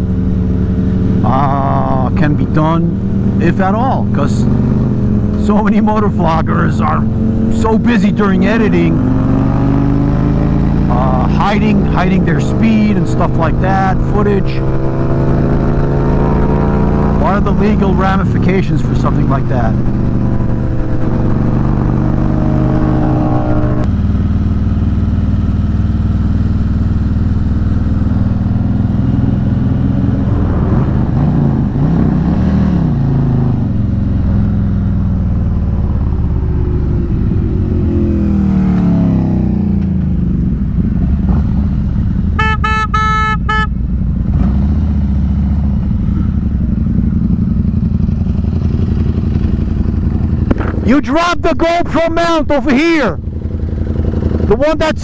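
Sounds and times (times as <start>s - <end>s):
motorcycle engine running: 0.0s - 55.0s
horn: 42.4s - 43.7s.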